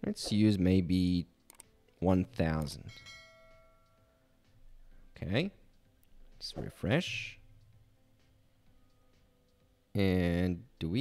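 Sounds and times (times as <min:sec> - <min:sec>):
faint bell chime: 0:02.7 - 0:04.4.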